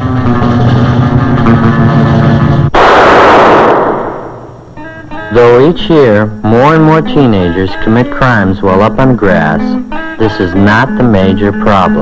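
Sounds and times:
pistol shot with echo: 0:02.8 - 0:04.6.

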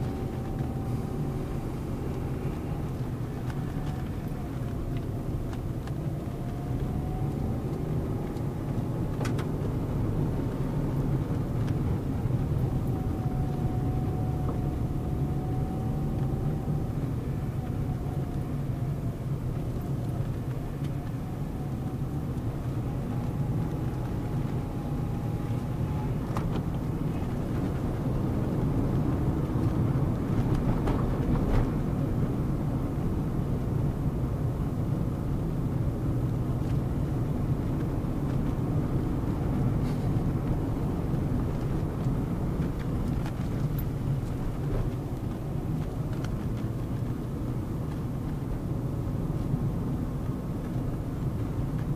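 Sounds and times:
engine and tyre rumble: 0:00.0 - 0:51.9.

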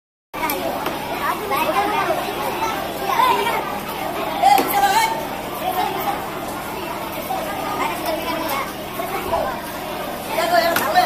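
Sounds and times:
people talking at once: 0:00.4 - 0:11.0.

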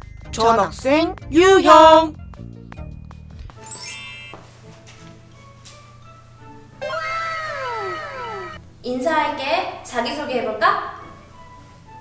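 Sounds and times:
soft background music: 0:00.0 - 0:06.9, 0:08.4 - 0:12.0.

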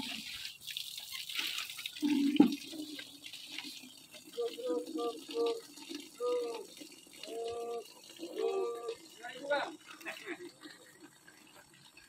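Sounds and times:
person's voice in drawn-out tones: 0:04.4 - 0:09.0.

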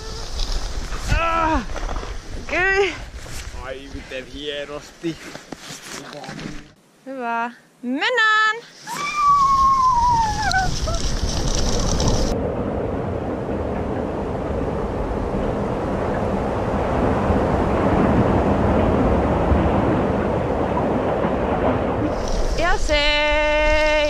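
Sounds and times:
skis running over snow: 0:00.0 - 0:06.6, 0:09.4 - 0:12.4
high falling cry: 0:08.8 - 0:11.1
wind rushing over microphone: 0:09.0 - 0:24.0.

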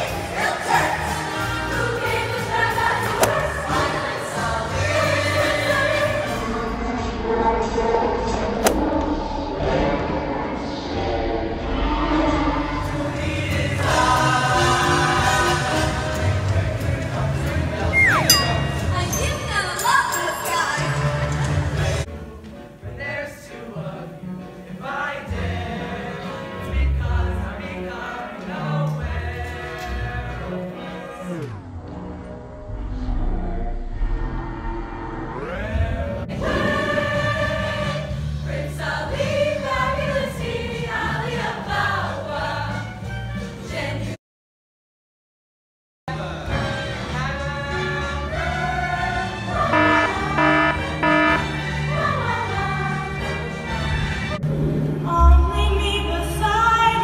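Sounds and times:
choir singing: 0:00.0 - 0:31.5, 0:35.4 - 0:42.9, 0:46.2 - 0:54.3
musical accompaniment: 0:17.2 - 0:22.9, 0:49.2 - 0:56.2.

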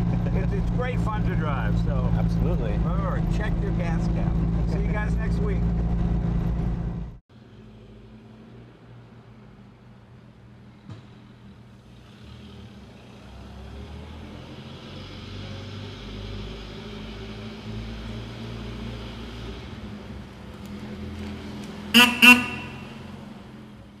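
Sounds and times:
car horn tooting: 0:21.9 - 0:23.2.

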